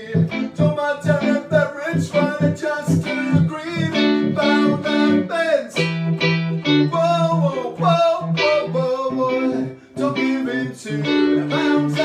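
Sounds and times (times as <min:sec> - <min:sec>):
man singing: 0:00.0 - 0:06.0, 0:06.6 - 0:12.0
plucked-sounding keyboard chords: 0:00.0 - 0:12.0.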